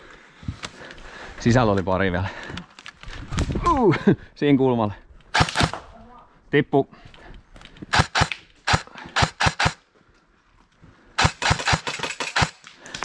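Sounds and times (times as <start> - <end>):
airsoft rifle shots: 5.3 - 5.8, 7.9 - 9.8, 11.2 - 12.7.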